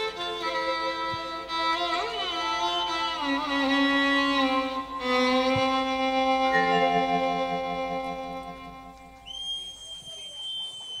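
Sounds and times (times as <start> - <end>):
held music note: 6.2 - 9.4
long high whistle: 8.8 - 11.0.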